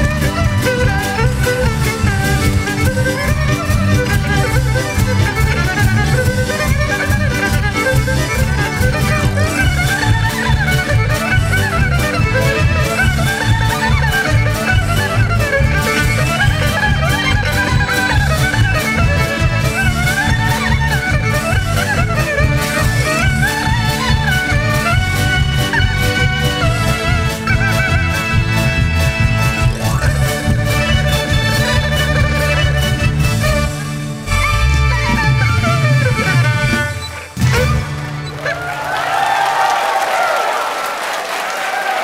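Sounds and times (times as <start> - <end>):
pulsing low accompaniment: 0.0 - 38.2
two-string fiddle melody: 0.0 - 38.8.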